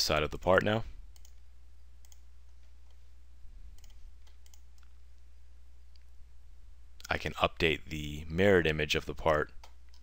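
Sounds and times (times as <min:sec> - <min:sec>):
computer mouse clicking: 0:01.1 - 0:01.4, 0:02.0 - 0:03.0, 0:03.8 - 0:04.9.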